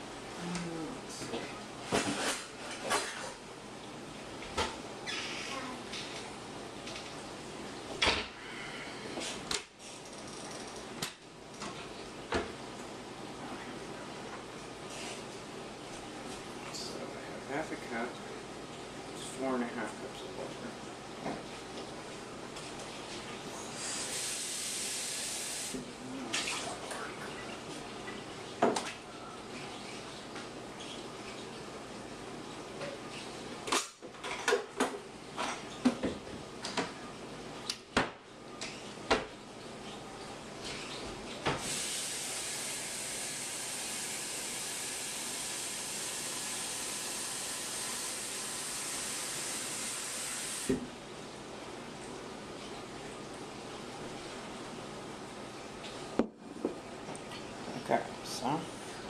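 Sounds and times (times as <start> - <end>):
faucet running: 41.6 - 50.7.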